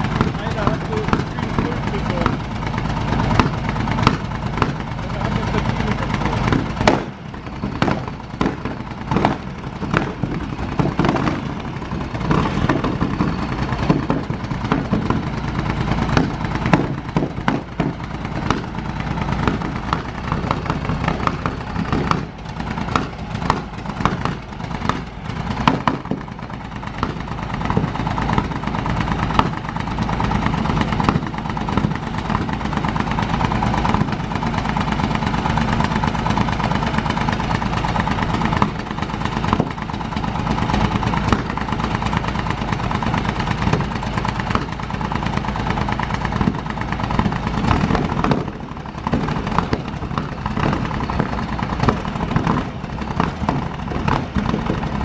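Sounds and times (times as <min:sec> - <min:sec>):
engine sharp irregular cracks: 0:00.0 - 0:55.0
racing car engine running: 0:00.0 - 0:55.0.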